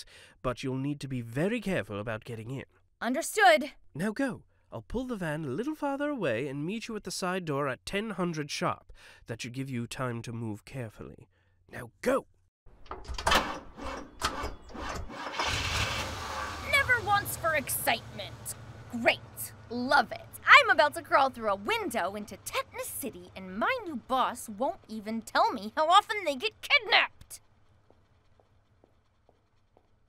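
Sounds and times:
van engine starting: 12.8 - 30.0.

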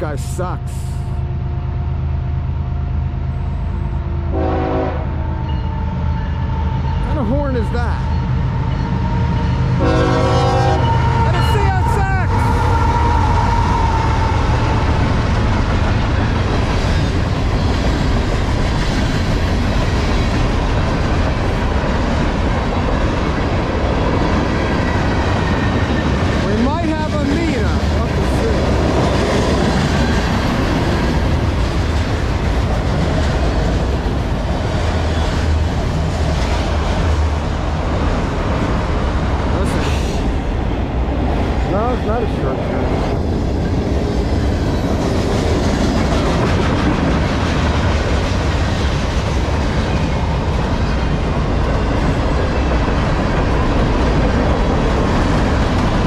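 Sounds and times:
train wheels rumbling on rail: 0.0 - 56.0
train horn: 4.2 - 5.8, 9.8 - 14.4.

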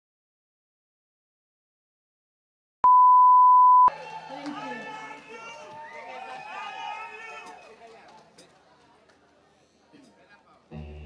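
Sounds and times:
murmur of crowd voices: 3.9 - 11.0.

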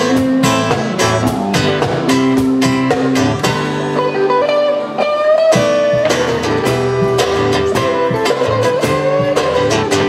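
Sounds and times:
drums: 0.0 - 10.0
electric guitar: 0.0 - 10.0
strummed acoustic guitar: 0.0 - 10.0.

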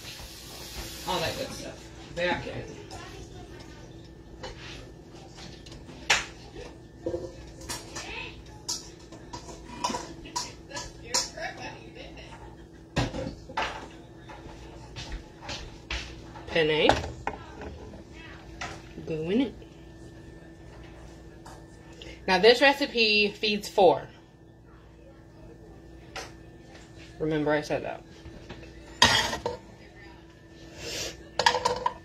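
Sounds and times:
cookware and utensils clattering: 0.0 - 19.6, 26.0 - 30.0, 30.8 - 32.0.

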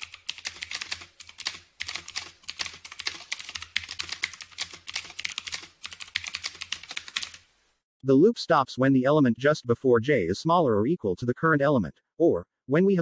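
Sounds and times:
keyboard typing: 0.0 - 7.5.

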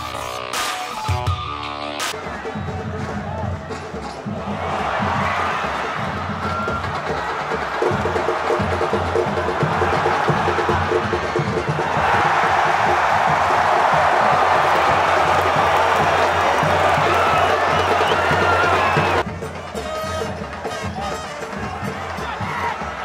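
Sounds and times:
steady rhythmic beat: 0.0 - 23.0
crowd cheering loudly: 2.1 - 23.0
stadium crowd singing: 2.2 - 19.2.

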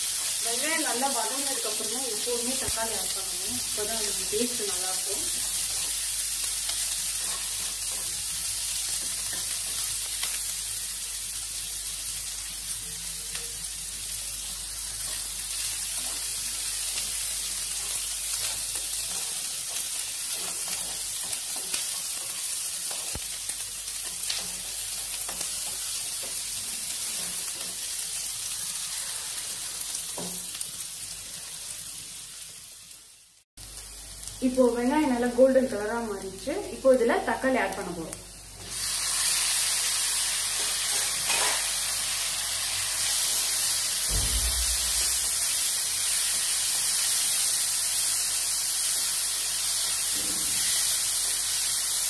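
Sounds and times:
vegetables sizzling in hot oil: 0.0 - 52.0
spatula stirring and scraping pan: 3.6 - 10.3, 14.8 - 31.8, 40.1 - 42.1.

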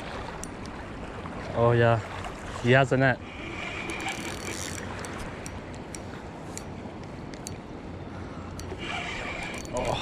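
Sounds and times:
river water rushing: 0.0 - 5.6
fishing reel clicking: 3.4 - 5.6, 8.5 - 10.0.

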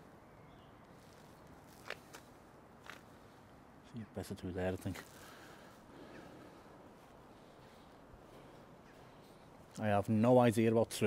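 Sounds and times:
soft footsteps on paving slabs: 0.9 - 3.5, 4.6 - 10.2.

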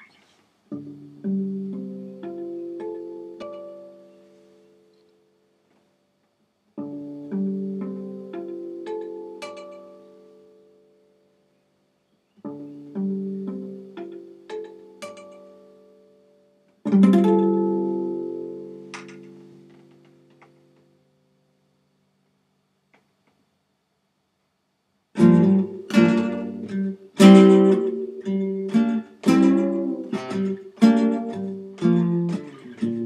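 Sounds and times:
fingerstyle acoustic guitar: 25.2 - 33.0.

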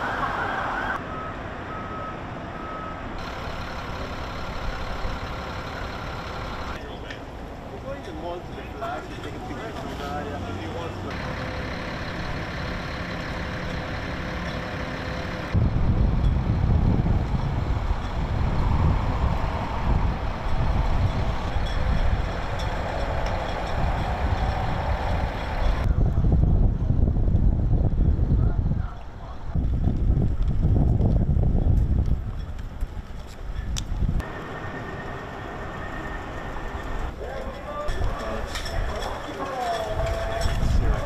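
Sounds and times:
traffic noise with deep rumble: 0.0 - 41.0.

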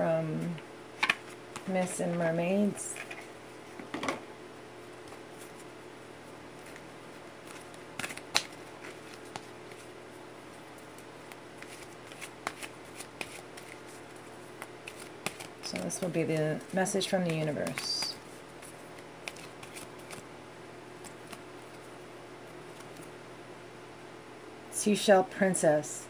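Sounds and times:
cards shuffled by hand: 6.6 - 20.3, 21.0 - 23.1
card snap: 8.0 - 8.6.

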